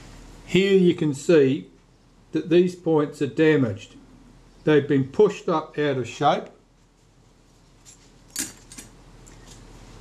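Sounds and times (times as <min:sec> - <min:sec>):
small metal parts clicking: 0:07.8 - 0:09.6.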